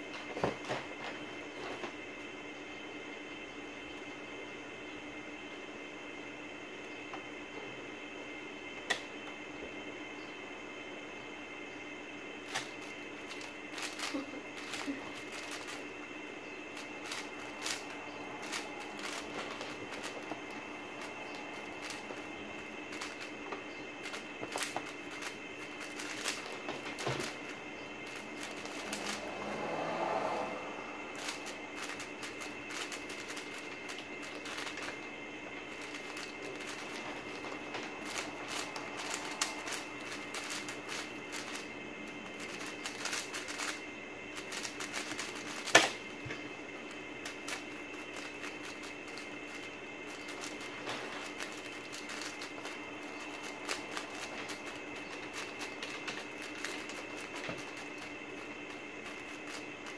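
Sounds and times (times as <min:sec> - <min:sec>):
puzzle cube clicking: 0:12.5 - 0:15.8, 0:16.8 - 0:20.2, 0:21.6 - 0:22.2, 0:24.0 - 0:27.5, 0:31.1 - 0:35.0, 0:38.0 - 0:41.6, 0:42.4 - 0:43.8, 0:44.4 - 0:46.0.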